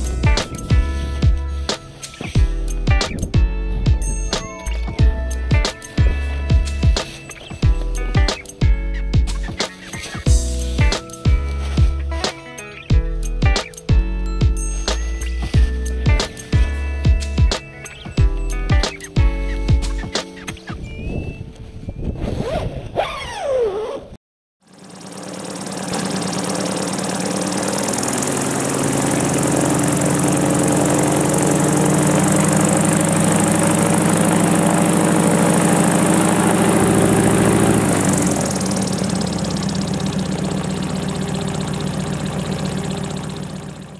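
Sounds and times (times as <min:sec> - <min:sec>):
large fan rushing: 0:24.7 - 0:43.9
motor humming: 0:24.7 - 0:43.9.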